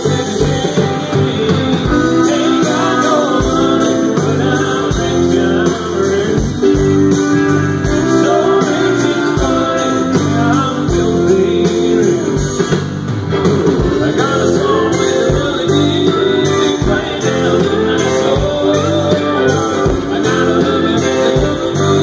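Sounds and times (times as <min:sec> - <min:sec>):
bass: 0:00.0 - 0:22.0
guitars: 0:00.0 - 0:22.0
steady drum beat: 0:00.0 - 0:22.0.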